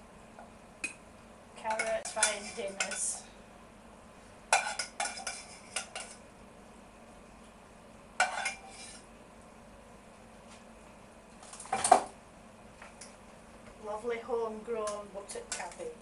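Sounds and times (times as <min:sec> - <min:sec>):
saucepan clinking against plates: 0:04.5 - 0:06.2.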